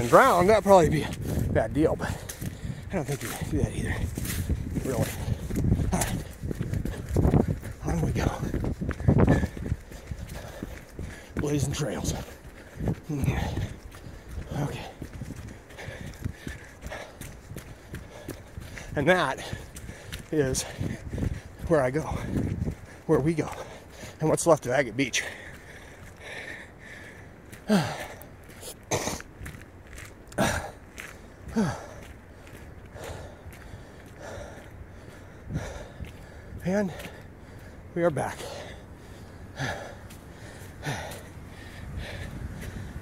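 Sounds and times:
jogging footsteps on dirt: 0.0s - 43.0s
man breathing hard: 1.1s - 11.4s, 12.1s - 24.2s, 25.2s - 43.0s.

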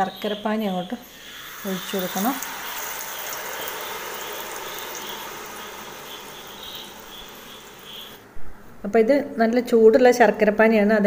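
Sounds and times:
syrup sizzling in a hot pan: 1.1s - 8.2s.

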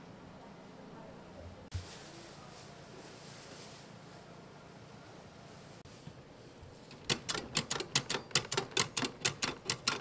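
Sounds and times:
machine clicking rapidly: 7.0s - 10.0s.

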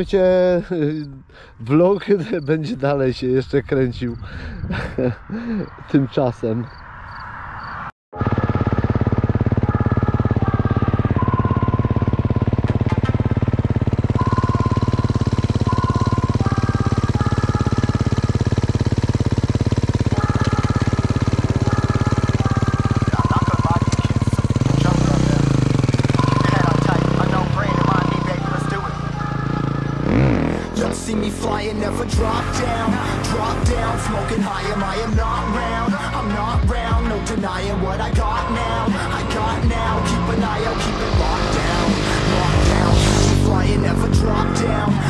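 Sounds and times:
motorcycle engine revving: 8.2s - 45.0s
synth music track: 8.2s - 45.0s.

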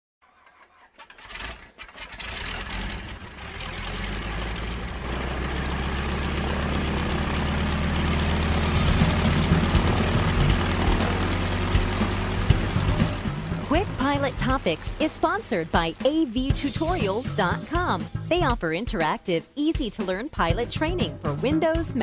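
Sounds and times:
engine starting and running: 0.2s - 18.5s.

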